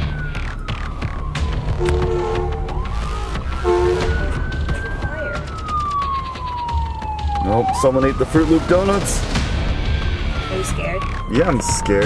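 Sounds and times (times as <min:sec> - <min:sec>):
siren wailing: 0:00.0 - 0:12.0.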